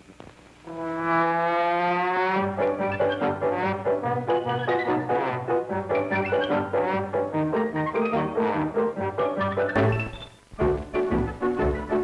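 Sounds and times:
film soundtrack crackles: 0:00.0 - 0:12.0
brass fanfare: 0:00.7 - 0:10.1.

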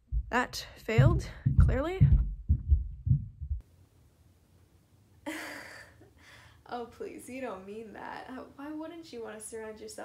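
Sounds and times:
low dull thumps: 0:00.0 - 0:03.6.

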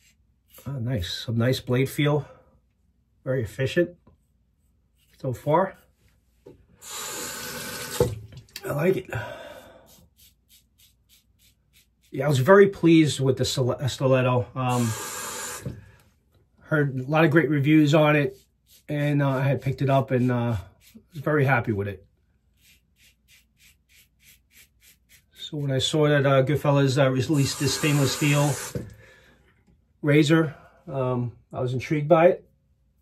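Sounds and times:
razor scraping stubble: 0:09.9 - 0:12.4, 0:22.6 - 0:25.9, 0:27.3 - 0:28.8.

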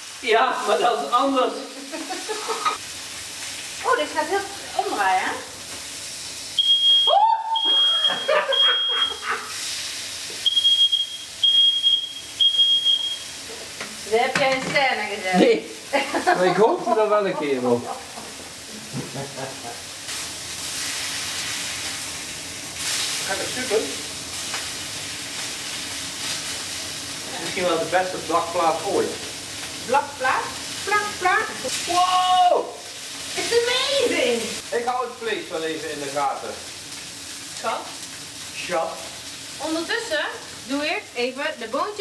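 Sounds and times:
steak sizzling on hot plate: 0:00.0 - 0:42.0
smoke alarm beeping: 0:06.6 - 0:09.5, 0:10.4 - 0:13.5.

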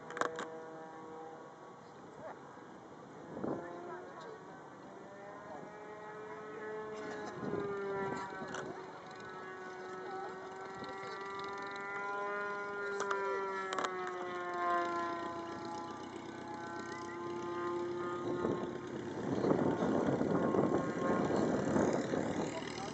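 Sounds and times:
propeller plane engine droning: 0:00.0 - 0:22.9.

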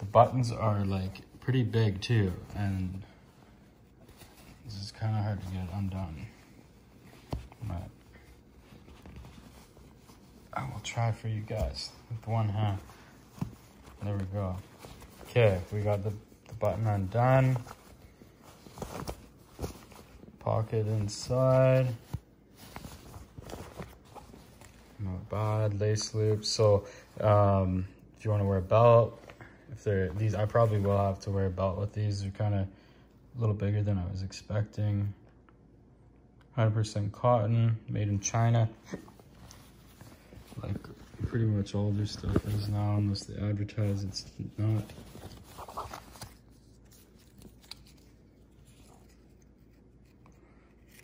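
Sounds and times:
fabric rustling: 0:00.0 - 0:31.8, 0:38.1 - 0:51.0.

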